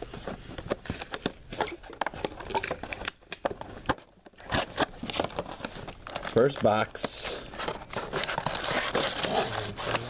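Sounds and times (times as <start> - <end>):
foil wrappers crinkling: 0.7 - 10.0
cardboard scraping: 3.7 - 10.0.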